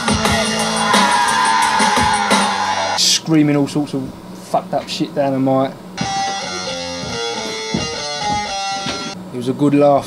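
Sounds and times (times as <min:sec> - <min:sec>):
electric guitar melody: 0:06.0 - 0:09.2.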